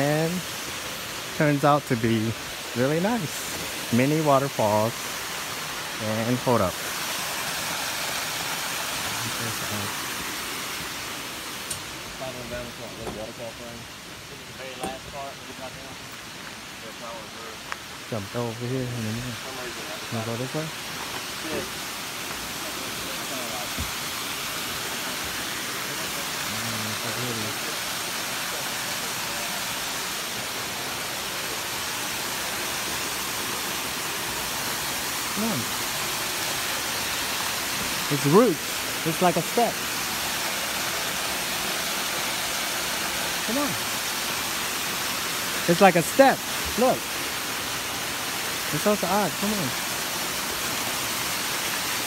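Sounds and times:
waterfalls rushing: 0.0s - 52.0s.

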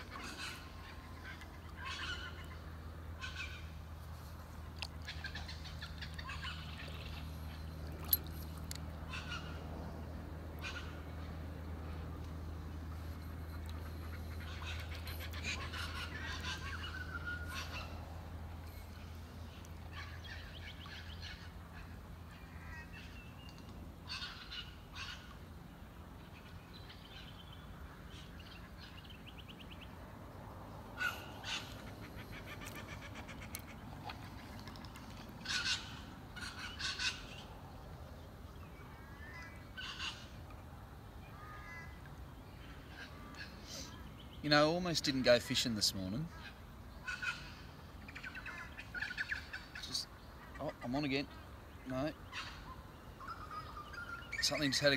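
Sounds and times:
birds calling and trilling: 0.0s - 54.9s
low steady hum: 0.0s - 54.9s.

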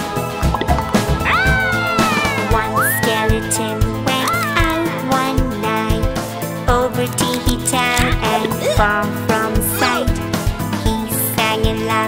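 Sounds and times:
children's background music: 0.0s - 12.0s
wailing cartoon sound effects: 1.2s - 5.0s.

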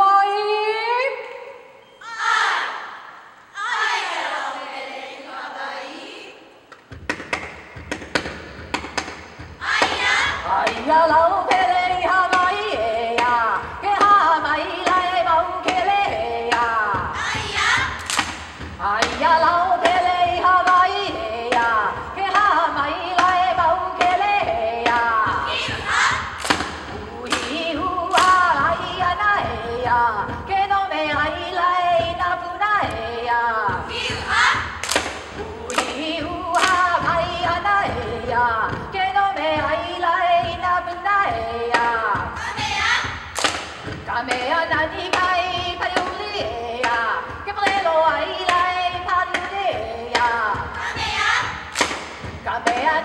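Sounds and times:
steady percussion beats: 6.2s - 53.0s
sharp drum strikes: 6.7s - 33.0s, 33.6s - 53.0s.

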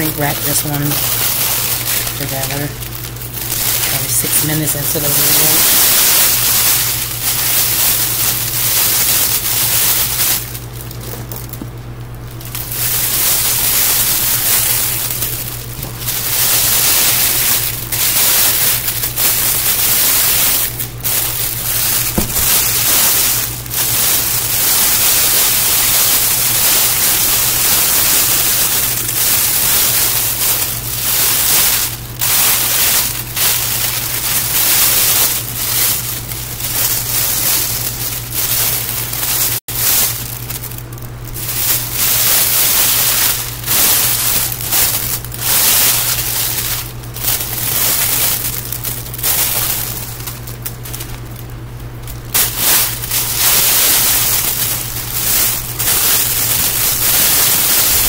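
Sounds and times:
plastic wrap crinkling: 0.0s - 58.0s
steady low hum: 0.0s - 58.0s.

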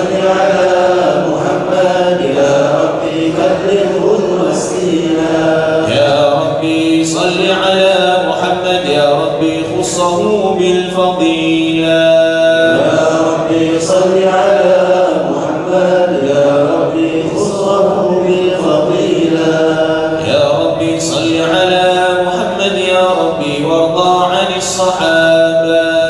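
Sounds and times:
devotional chanting: 0.0s - 26.0s.

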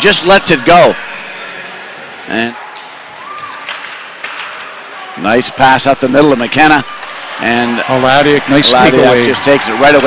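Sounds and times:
ice arena crowd noise: 0.0s - 10.0s.

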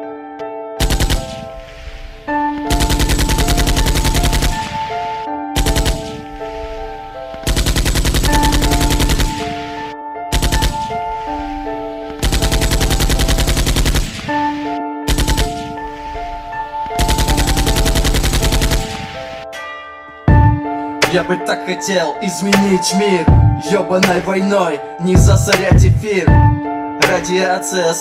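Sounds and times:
sustained instrumental melody: 0.0s - 28.0s
machine-gun fire: 0.8s - 1.8s, 2.7s - 6.2s, 7.4s - 9.4s, 10.4s - 11.0s, 12.2s - 15.6s, 17.0s - 19.1s.

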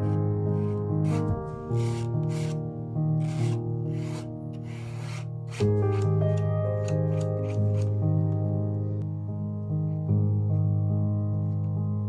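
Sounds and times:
palette knife scraping paint on canvas: 0.0s - 2.6s, 3.2s - 6.1s.

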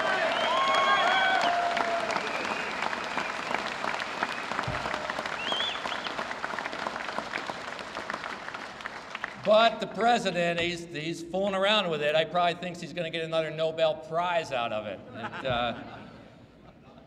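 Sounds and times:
applause from crowd: 0.0s - 9.7s.

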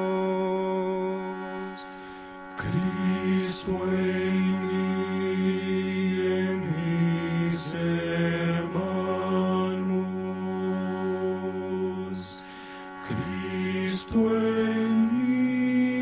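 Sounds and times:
man chanting a prayer: 0.0s - 1.9s, 2.6s - 12.4s, 13.0s - 16.0s
breathy hisses: 1.8s - 2.6s, 12.4s - 13.1s.

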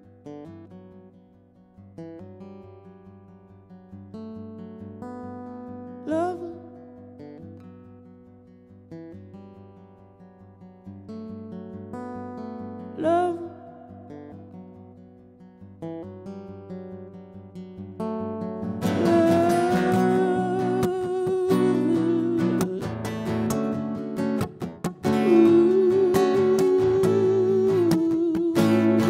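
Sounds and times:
acoustic guitar picking and strumming: 0.0s - 29.0s.

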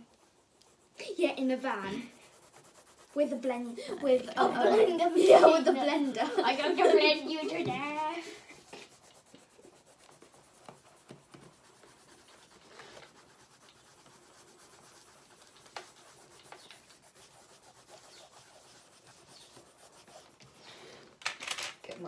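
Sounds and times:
pencils scratching on paper: 0.0s - 22.0s.

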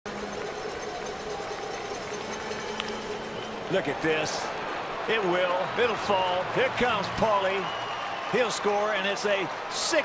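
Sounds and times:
stadium crowd murmur: 0.1s - 10.0s.

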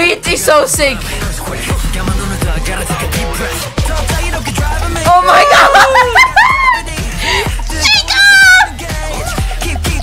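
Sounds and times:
pop dance music: 0.0s - 10.0s
woman squealing: 5.1s - 6.9s, 7.8s - 9.4s.

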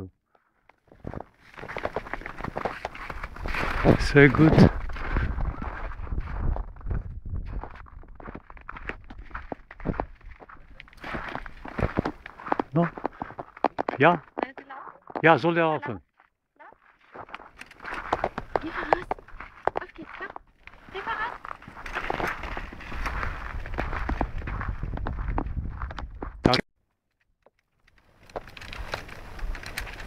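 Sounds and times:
footsteps on snow: 0.9s - 26.4s
low rumble on microphone: 22.6s - 26.4s.

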